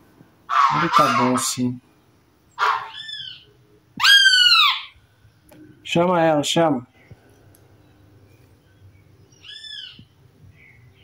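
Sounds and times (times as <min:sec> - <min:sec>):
young bird calling: 0:00.5 - 0:01.7, 0:02.5 - 0:05.5, 0:09.3 - 0:11.0.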